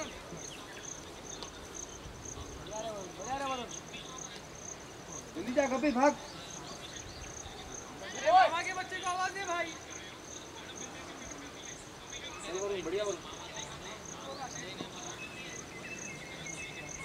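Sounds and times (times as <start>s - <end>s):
insect chirping high-pitched: 0.0s - 17.0s
voices calling out: 0.0s - 17.0s.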